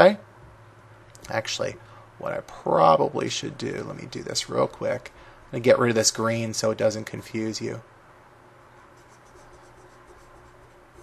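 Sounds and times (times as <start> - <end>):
steady low hum: 0.0 - 11.0
stylus scratching on tablet: 8.8 - 11.0.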